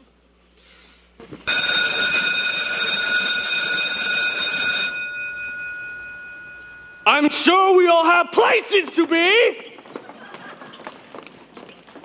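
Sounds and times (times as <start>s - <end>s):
electric school bell ringing: 1.5s - 8.2s.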